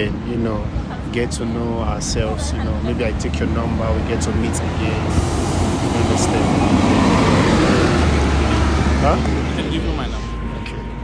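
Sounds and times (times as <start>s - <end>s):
loud outdoor rumble with hiss: 0.0s - 11.0s.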